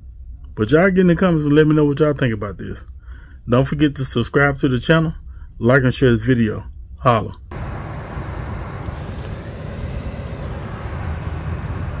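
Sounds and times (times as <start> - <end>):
wind buffeting microphone: 7.5 - 12.0.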